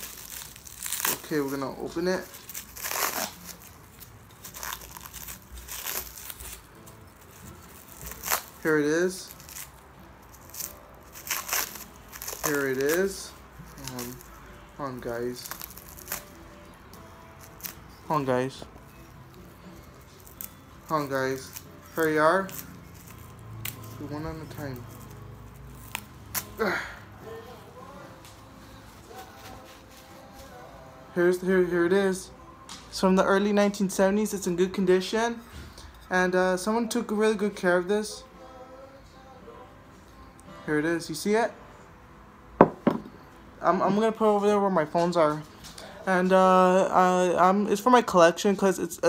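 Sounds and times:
plastic wrapping crinkling: 0.0s - 14.3s, 15.0s - 16.4s.

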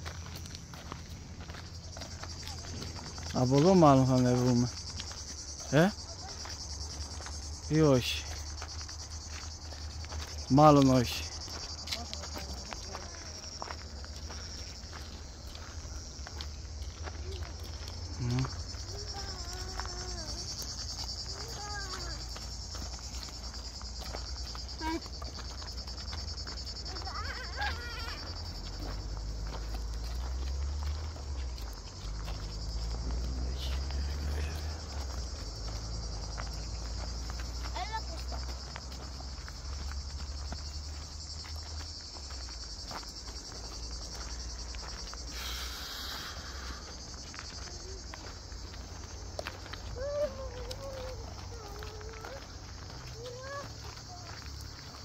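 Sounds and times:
cicadas chorus: 0.0s - 55.0s
children calling: 17.0s - 23.5s, 26.6s - 31.1s, 47.5s - 55.0s.

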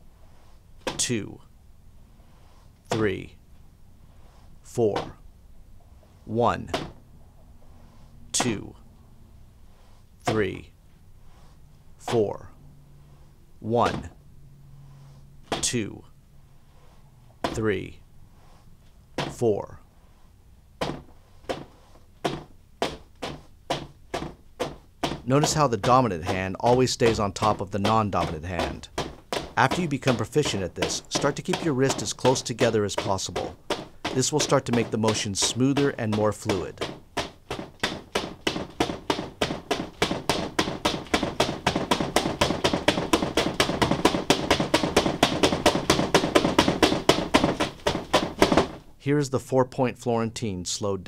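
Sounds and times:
floggers striking a padded table: 20.8s - 48.8s.

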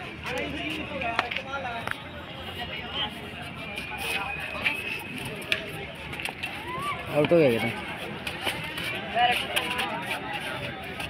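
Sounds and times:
people calling and chattering: 0.0s - 11.0s.

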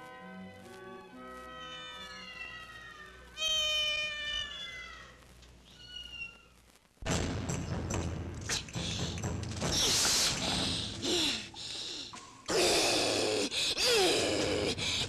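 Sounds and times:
cat meowing: 1.5s - 6.6s
cat yowling: 1.6s - 6.6s
sustained film music: 7.1s - 12.2s.

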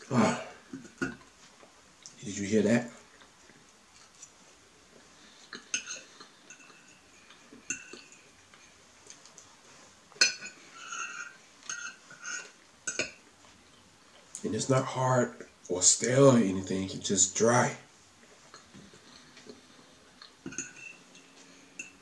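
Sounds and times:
fork clinking on plate: 20.5s - 22.0s.

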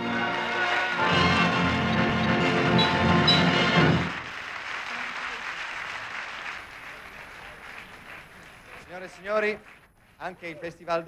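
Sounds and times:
orchestral song ending: 0.0s - 4.2s
audience applauding: 0.0s - 10.8s.

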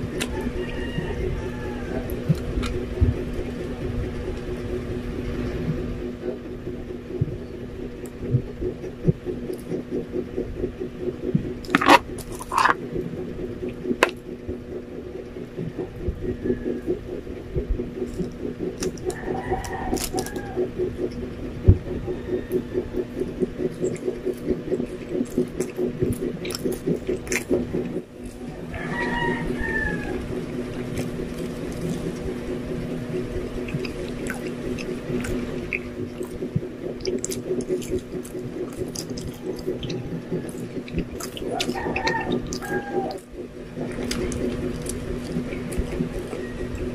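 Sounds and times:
chewing: 0.0s - 6.4s, 7.2s - 14.4s, 17.9s - 46.9s
low hum: 0.0s - 46.9s.

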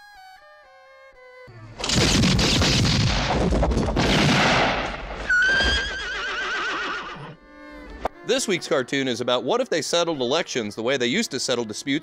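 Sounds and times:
gunfire burst: 1.8s - 5.2s
horse whinnying: 5.2s - 7.4s.

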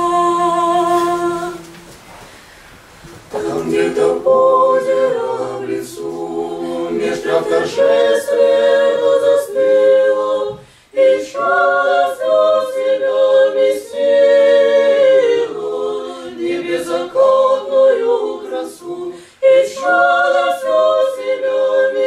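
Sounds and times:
choir singing a cappella: 0.0s - 1.8s, 3.3s - 22.0s.

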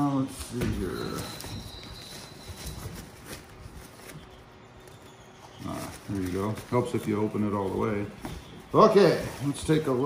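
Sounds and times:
fabric bag rustling: 0.9s - 10.0s
soft scuffs: 5.6s - 10.0s.

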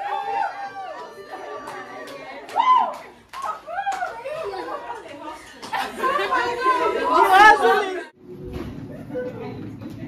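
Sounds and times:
women chattering: 3.5s - 8.1s.

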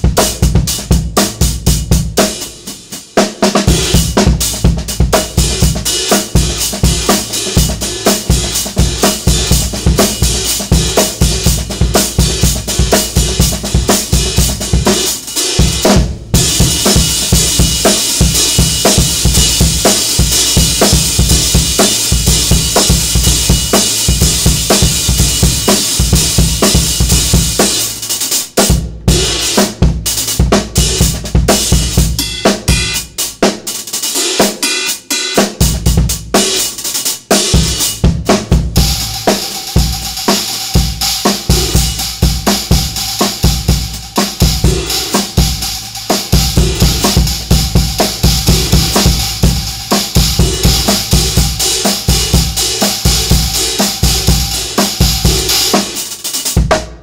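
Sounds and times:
drum kit groove: 0.0s - 57.0s.

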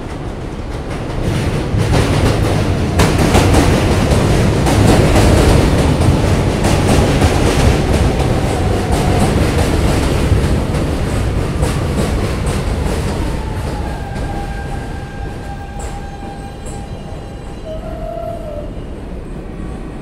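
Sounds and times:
subway train wheel rumble: 0.0s - 20.0s.

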